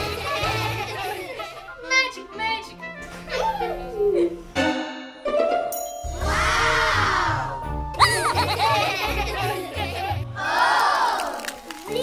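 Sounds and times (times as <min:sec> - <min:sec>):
chime ringing: 0:05.7 - 0:06.3.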